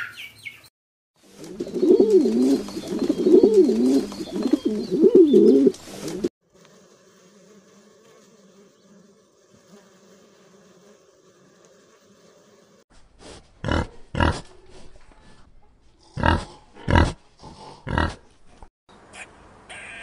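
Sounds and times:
pigeons cooing: 1.3 - 6.3
faint bee buzzing: 1.4 - 12.9.

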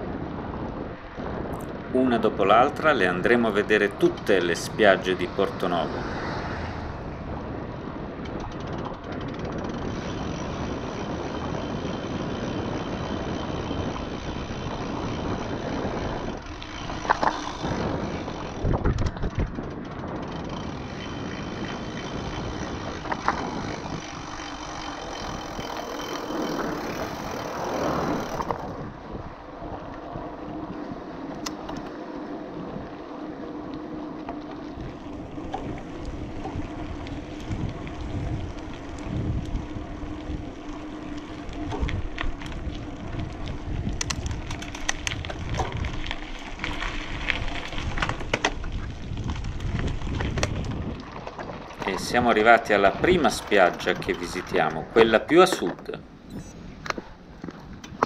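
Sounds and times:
bike tyres on paved road: 0.0 - 58.0
wind on microphone: 0.0 - 58.0.

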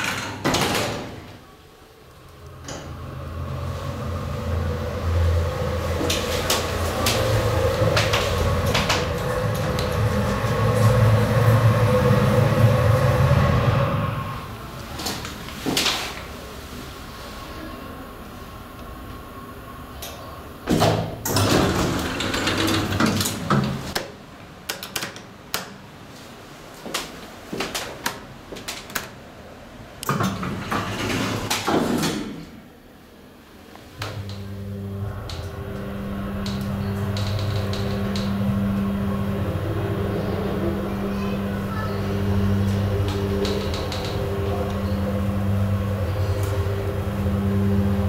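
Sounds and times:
elevator doors clattering: 0.0 - 1.5, 2.2 - 16.5, 19.8 - 24.0, 30.0 - 32.8, 33.9 - 48.0
elevator machinery humming: 0.0 - 24.0, 27.8 - 48.0.

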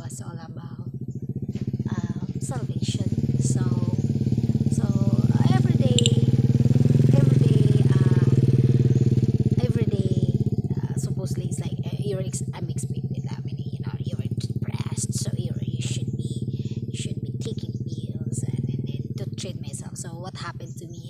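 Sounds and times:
voices: 0.0 - 1.0, 1.9 - 21.0
motorcycle engine running: 0.0 - 21.0.

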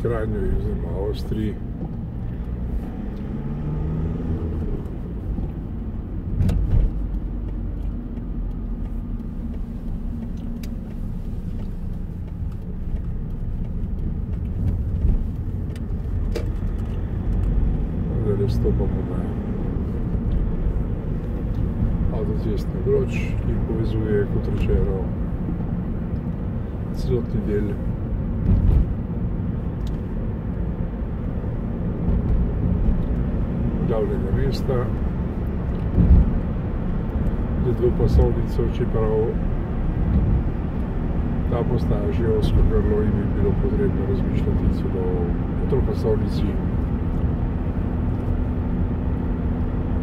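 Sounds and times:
car road and engine noise: 0.0 - 50.0.

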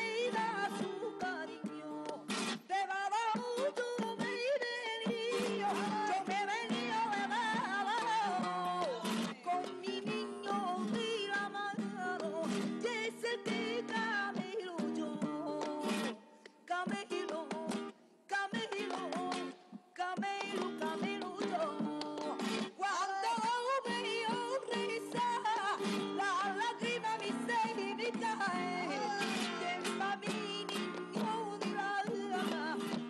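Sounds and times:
strummed spanish guitar: 0.0 - 33.0
woman singing flamenco: 0.0 - 33.0.

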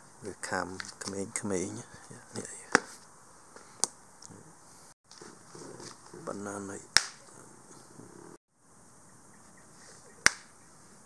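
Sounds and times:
flip-flop smacking concrete floor: 10.2 - 10.5.

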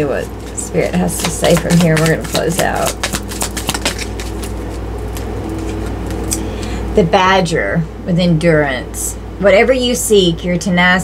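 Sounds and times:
low background hum: 0.0 - 11.0
cards clicking: 1.2 - 6.4.

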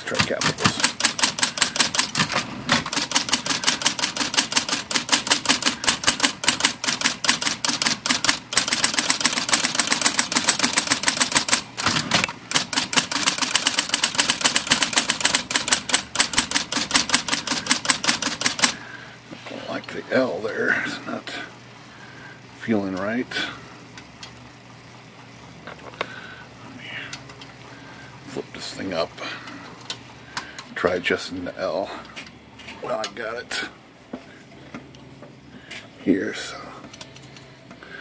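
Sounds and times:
electric typewriter clatter: 0.0 - 18.8
typewriter motor hum: 0.0 - 18.9, 36.9 - 37.6.

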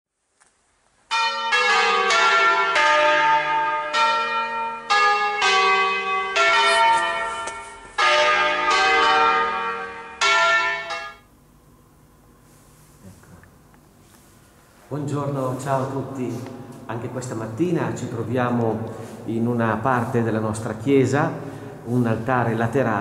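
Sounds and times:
church bells ringing: 1.1 - 11.3.

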